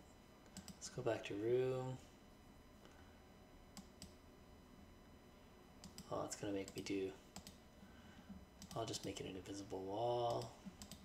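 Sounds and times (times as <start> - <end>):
computer mouse clicks: 0.4 - 0.8, 5.8 - 6.1, 7.4 - 7.6, 8.6 - 8.8, 10.3 - 11.0.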